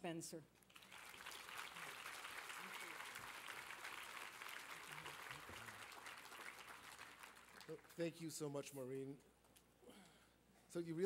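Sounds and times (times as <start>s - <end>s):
audience applauding: 0.7s - 8.1s.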